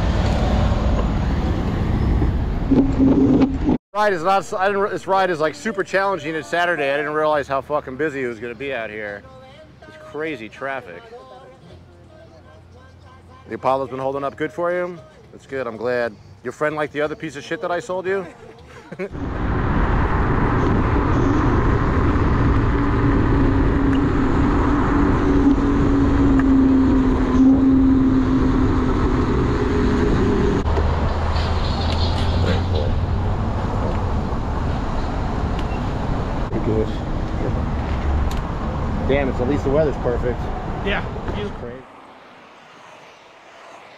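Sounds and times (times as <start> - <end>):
road traffic: 0.0 - 43.9
droning tone: 19.2 - 30.7
low hum: 19.2 - 43.9
wind rushing over microphone: 19.2 - 43.9.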